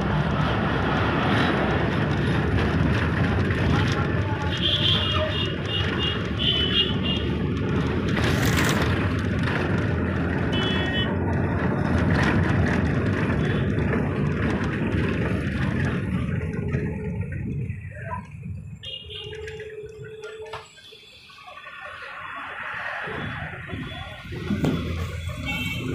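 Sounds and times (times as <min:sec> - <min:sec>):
vehicle engine and road rumble: 0:00.0 - 0:25.9.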